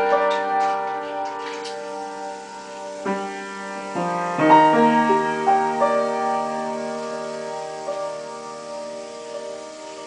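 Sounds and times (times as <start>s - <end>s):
piano chord ringing: 0.0s - 10.0s.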